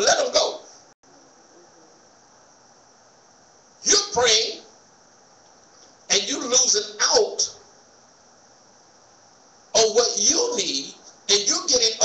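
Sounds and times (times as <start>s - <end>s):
faint steady hiss: 0.0s - 12.0s
man speaking: 3.8s - 4.7s, 6.1s - 7.6s, 9.8s - 12.0s.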